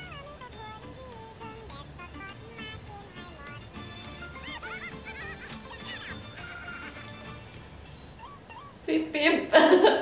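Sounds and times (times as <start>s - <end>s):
cartoon background music: 0.0s - 8.8s
squeaky chipmunk voices chattering: 1.9s - 8.9s.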